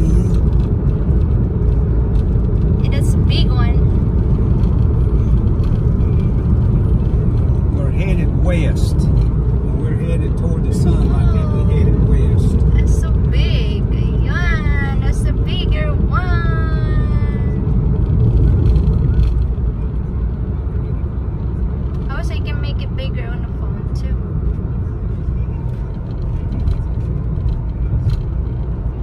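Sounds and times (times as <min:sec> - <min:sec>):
road and engine rumble in car: 0:00.0 - 0:29.0.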